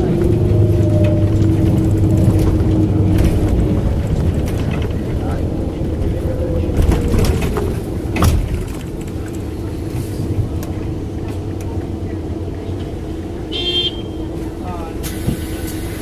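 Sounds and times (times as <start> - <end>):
vehicle engine and road rumble: 0.0 - 16.0.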